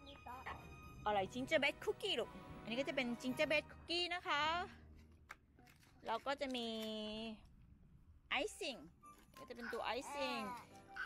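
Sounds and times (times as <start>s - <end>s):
woman speaking: 1.1s - 4.8s, 6.0s - 7.5s, 8.3s - 10.6s.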